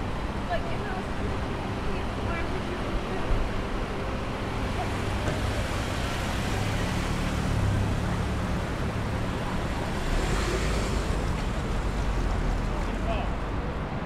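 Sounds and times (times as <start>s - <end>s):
city street traffic: 0.0s - 14.0s
deep engine rumble: 0.0s - 14.0s
low engine hum: 0.0s - 14.0s.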